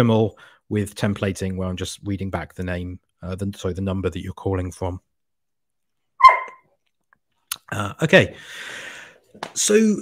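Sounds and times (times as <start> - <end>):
animal yelp: 6.2 - 6.6.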